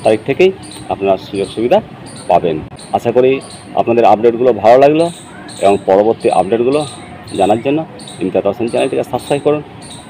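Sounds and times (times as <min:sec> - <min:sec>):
man talking: 0:00.0 - 0:09.7.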